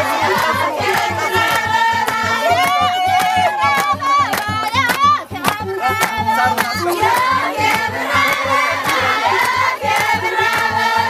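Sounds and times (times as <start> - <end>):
fast drum beat: 0.0 - 11.0
many voices singing together: 0.0 - 11.0.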